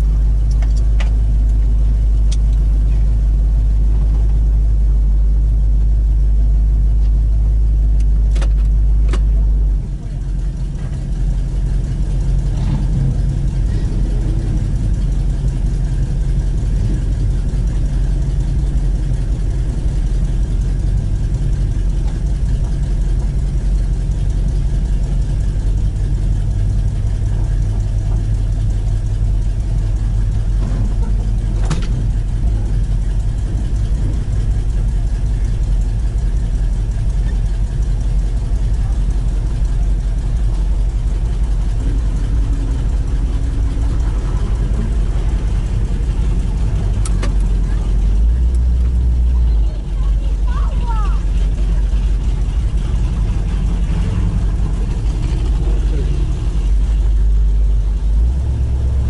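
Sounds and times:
car engine running at low speed: 0.0 - 59.0.

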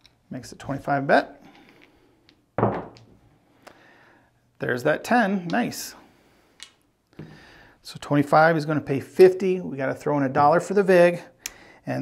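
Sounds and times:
dice thumping on felt table: 2.6 - 3.2.

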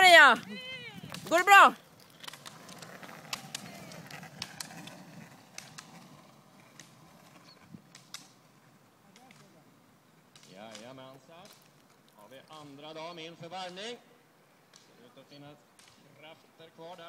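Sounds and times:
ski pole tips striking asphalt: 2.0 - 5.9, 6.7 - 7.0, 7.8 - 8.4, 10.3 - 12.6.

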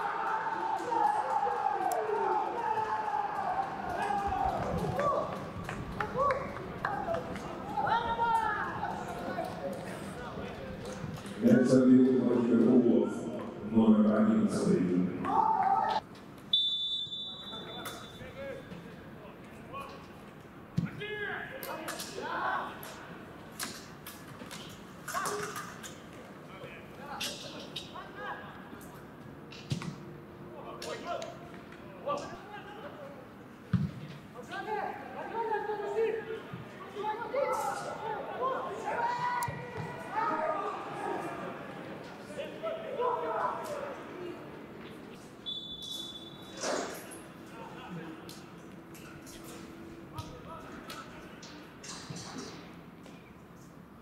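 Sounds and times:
players shouting: 0.0 - 10.6, 14.5 - 16.0, 34.6 - 44.6
referee's whistle blast: 16.5 - 18.4, 45.4 - 46.6.

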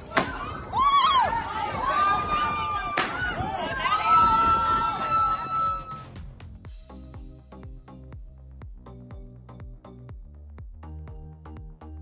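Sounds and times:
group cheering: 0.0 - 6.1.

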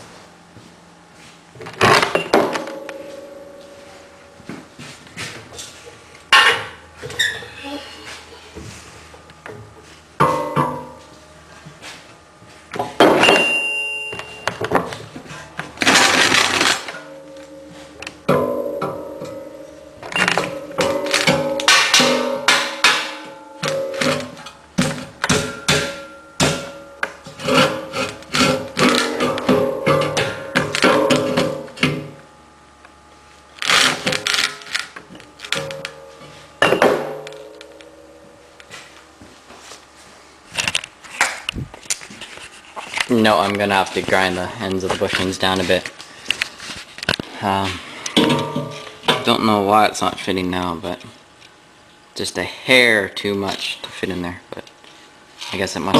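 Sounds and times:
metal clanks and knocks: 9.5 - 11.1, 15.8 - 32.2, 48.0 - 49.4.

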